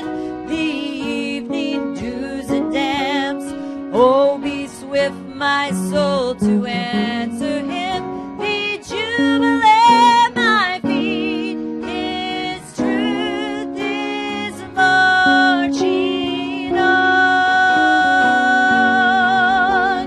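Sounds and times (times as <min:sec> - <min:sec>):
instrumental accompaniment: 0:00.0 - 0:20.0
woman singing church song: 0:00.0 - 0:20.0.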